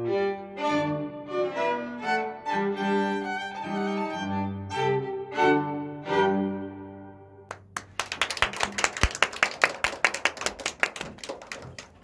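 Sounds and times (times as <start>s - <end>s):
small audience applauding: 7.5s - 12.0s.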